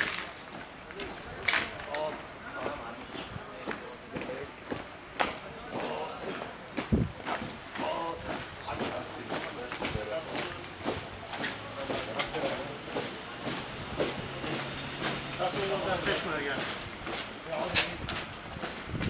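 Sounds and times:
boots marching on pavement: 0.0 - 19.0
voices: 0.0 - 19.0.

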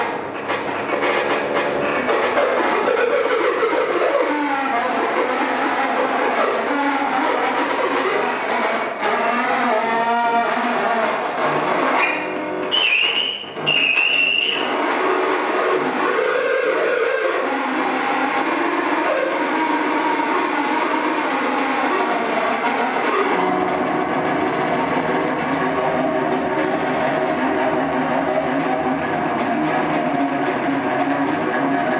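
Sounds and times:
harsh electronic noise music: 0.0 - 31.9
high squealing tone: 1.9 - 27.4.

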